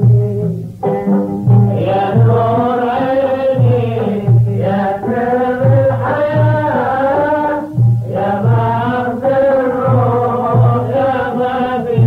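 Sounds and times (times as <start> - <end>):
low drum beats: 0.0 - 12.0
person singing a melody: 0.0 - 12.0.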